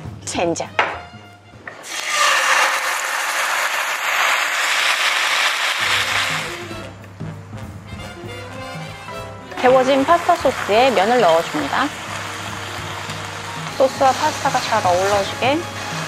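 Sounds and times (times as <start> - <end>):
sauce sizzling in a frying pan: 1.8 - 6.8, 9.6 - 16.0.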